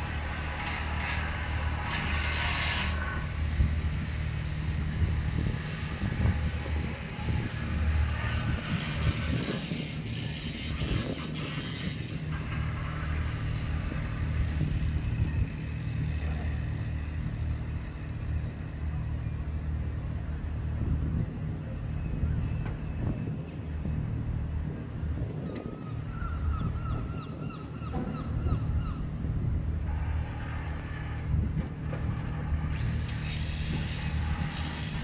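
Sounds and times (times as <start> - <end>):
large engine humming: 0.0 - 10.4, 12.2 - 35.0.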